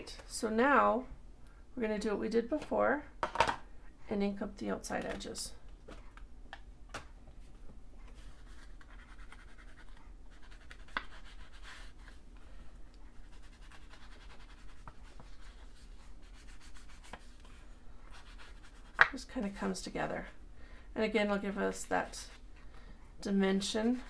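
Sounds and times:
ink tool scrubbing on paper: 13.1 - 19.0.

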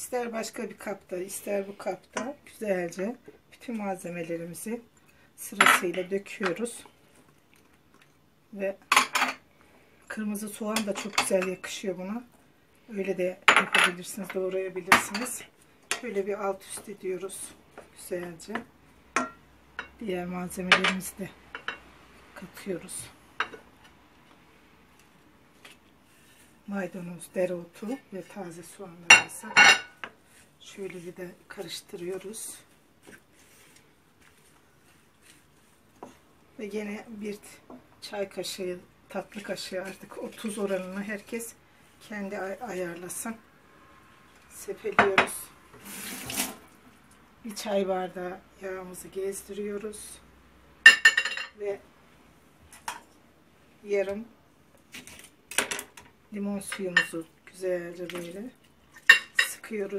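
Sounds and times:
kitchenware clinking: 19.2 - 20.0, 50.9 - 51.6.

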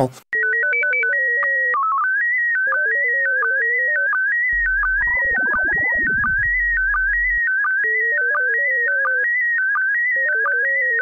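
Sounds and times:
person speaking: 0.0 - 0.2
beeping synthesizer melody: 4.6 - 7.5.

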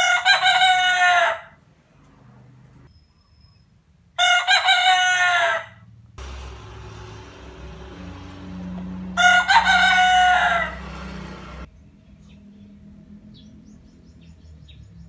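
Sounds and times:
rooster crowing: 0.0 - 1.6, 4.2 - 5.8, 8.3 - 11.7.

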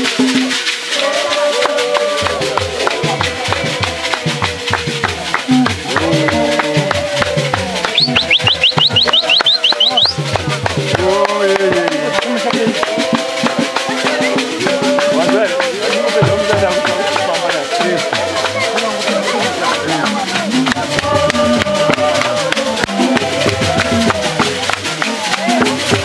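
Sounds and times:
men singing a church song: 0.0 - 26.0
shaken rattles: 0.0 - 26.0
shrill trilling call: 7.9 - 10.2.

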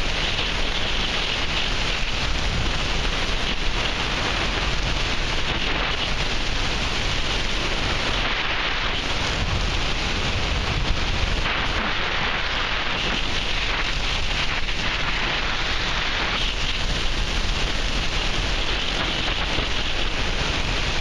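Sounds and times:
wind rushing on microphone: 0.0 - 21.0.

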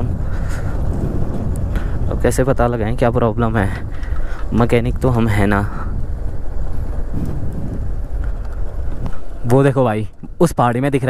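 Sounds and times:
road and tyre noise: 0.0 - 11.0
wind rumbling on microphone: 0.0 - 11.0.

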